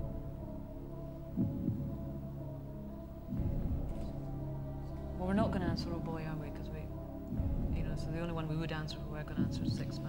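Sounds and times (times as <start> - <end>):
heartbeat-like pulse: 1.2 - 2.5, 3.2 - 4.3, 7.0 - 10.0.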